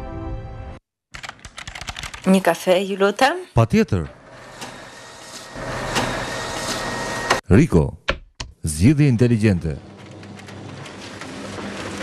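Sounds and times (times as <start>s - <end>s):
office printer running: 4.0s - 7.4s, 9.2s - 12.0s.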